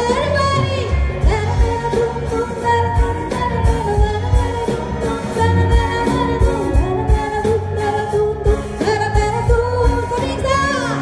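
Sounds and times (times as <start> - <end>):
electric guitars: 0.0 - 11.0
woman singing: 0.0 - 11.0.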